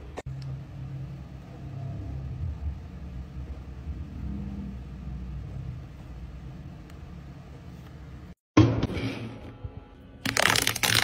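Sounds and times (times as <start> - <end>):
faint hum: 0.0 - 8.4.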